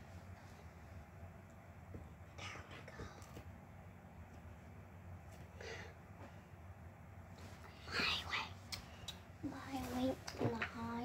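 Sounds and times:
low steady hum: 0.0 - 11.0
child whispering: 2.4 - 3.4, 7.7 - 8.6.

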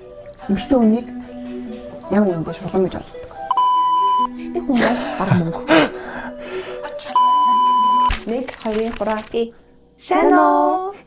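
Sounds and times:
background music: 0.0 - 11.0
censor bleep: 3.5 - 4.3, 7.2 - 8.1
person speaking: 6.8 - 10.7.

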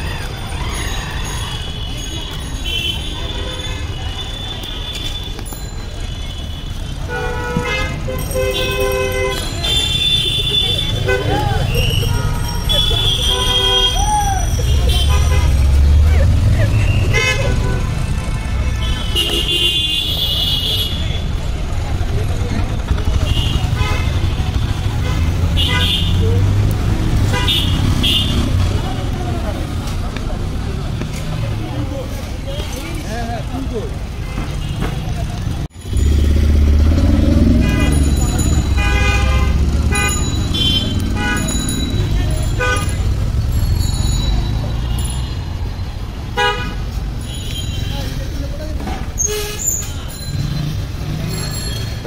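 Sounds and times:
street traffic rumbling: 0.0 - 52.0
vehicle horns tooting: 1.6 - 16.0, 16.7 - 21.4, 22.9 - 26.6, 27.2 - 28.7, 35.8 - 48.4, 49.2 - 52.0.

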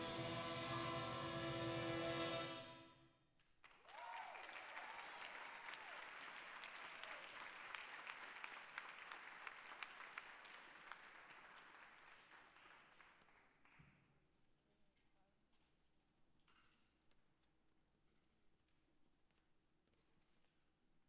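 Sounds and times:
audience applauding: 3.6 - 13.8
whoop of cheering: 3.9 - 6.2.

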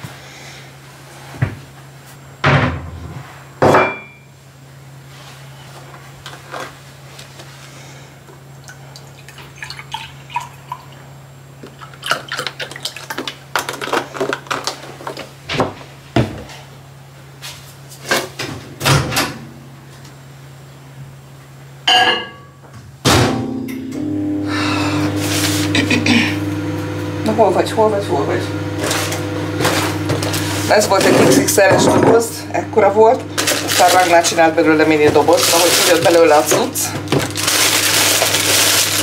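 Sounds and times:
low steady hum: 18.8 - 39.0
loud machine hum: 23.1 - 39.0.

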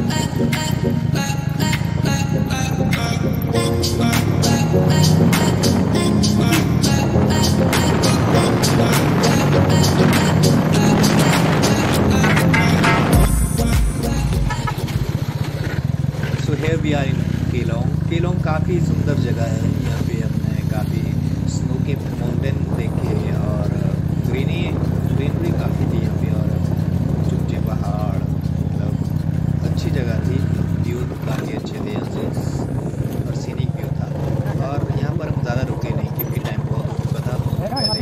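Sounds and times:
motorcycle engine running: 0.0 - 38.0.

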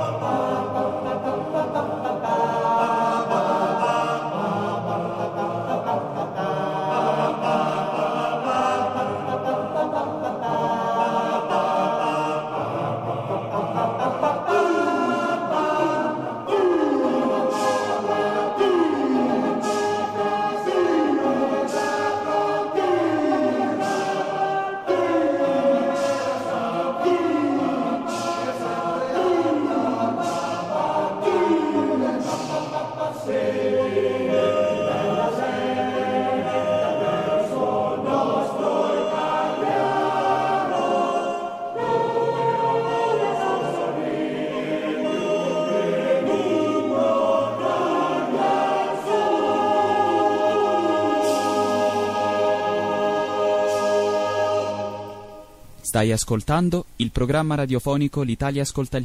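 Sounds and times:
choir singing: 0.0 - 55.8.

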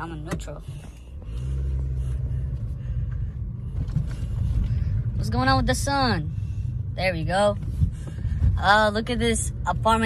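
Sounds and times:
car engine hum: 0.0 - 10.0
road rumble: 0.0 - 10.0.

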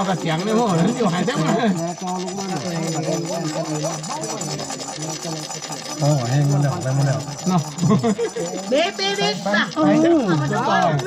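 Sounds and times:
faint high whirring: 0.0 - 11.0
onlookers' voices: 0.0 - 11.0.

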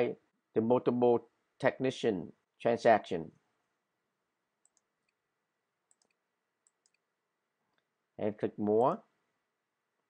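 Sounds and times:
computer mouse clicks: 4.6 - 5.2, 5.9 - 7.1.

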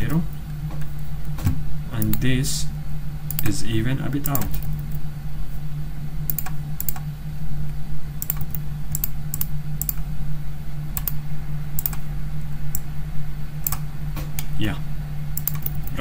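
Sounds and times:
steady low hum: 0.0 - 16.0
mouse and keyboard clicks: 8.2 - 10.0, 11.0 - 11.2, 15.4 - 15.9.

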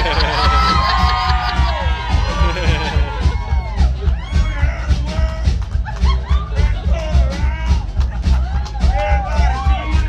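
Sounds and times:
pounding drum beat: 0.0 - 10.0
rockabilly band playing live: 0.0 - 10.0.

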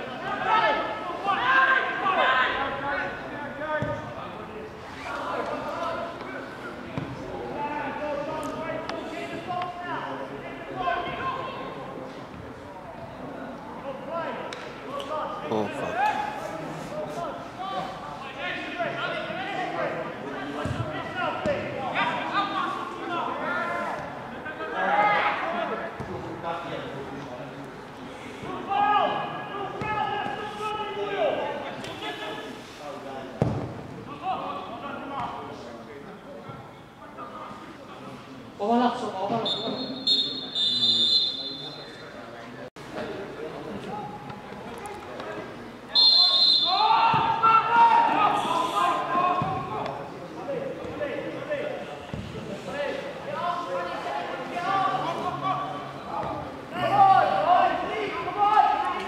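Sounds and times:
players shouting: 0.0 - 3.6, 45.9 - 49.9, 53.2 - 59.0.

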